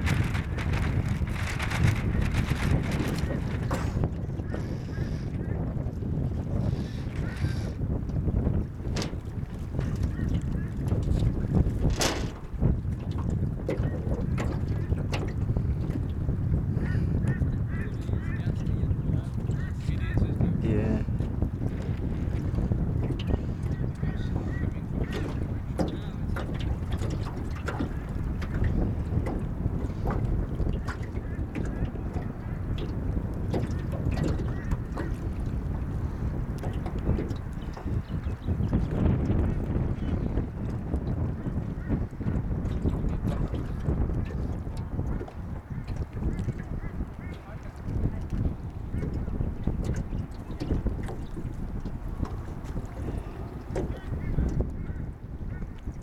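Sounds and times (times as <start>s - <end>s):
wind buffeting microphone: 0.0s - 56.0s.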